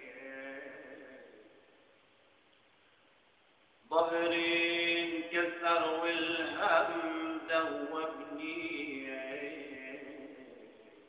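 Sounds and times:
man singing long held notes: 0.0 - 1.7.

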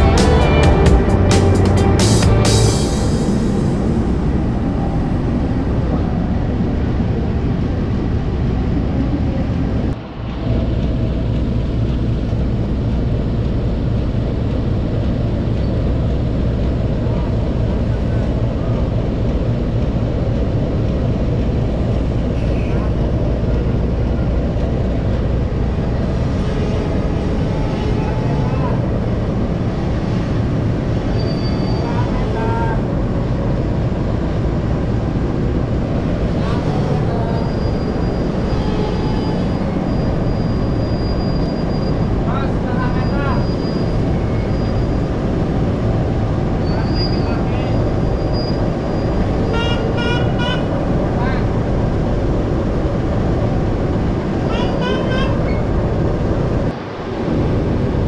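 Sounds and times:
locomotive diesel engine rumbling: 0.0 - 58.0
voices: 22.1 - 52.0.

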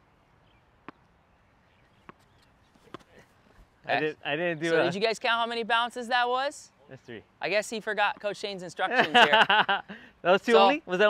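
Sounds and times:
tennis ball bouncing on hard court: 2.0 - 3.1.

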